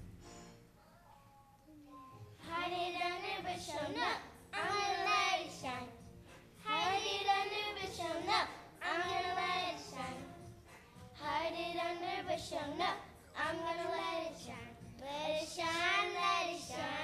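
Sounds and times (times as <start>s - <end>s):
girls singing: 2.3s - 17.0s.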